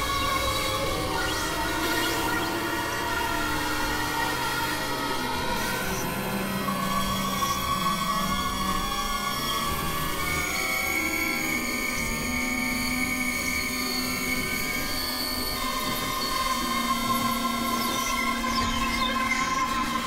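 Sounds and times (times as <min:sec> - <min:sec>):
synthesizer drone tones: 0:00.0 - 0:04.5.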